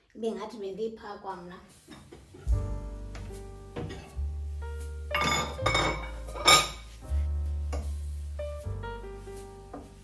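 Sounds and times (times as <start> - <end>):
ceramic bowls clinking on stone: 5.1 - 6.8.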